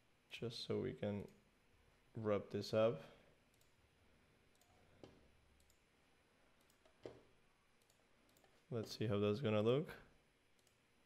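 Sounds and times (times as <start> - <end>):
faint computer mouse clicks: 10.6 - 10.8.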